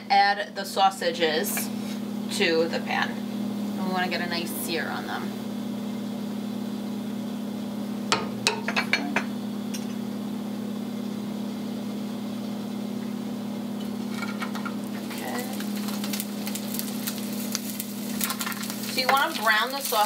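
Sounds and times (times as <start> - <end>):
steady low hum: 0.0 - 20.0
sausages sizzling in oil: 1.2 - 20.0.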